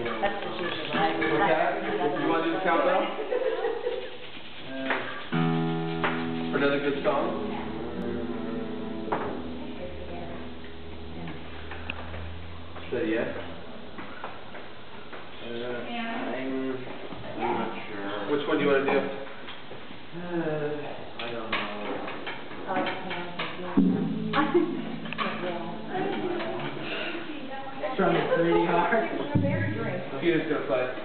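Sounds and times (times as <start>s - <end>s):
guitar chord ringing: 5.3s - 13.8s, 23.8s - 26.7s
instrument note struck and held: 5.4s - 12.9s, 23.8s - 26.8s
steady low hum: 5.4s - 15.4s, 23.8s - 26.9s
sharp knock: 9.0s - 9.6s.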